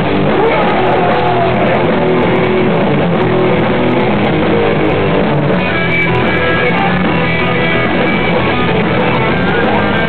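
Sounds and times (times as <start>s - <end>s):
punk band playing live: 0.0s - 10.0s.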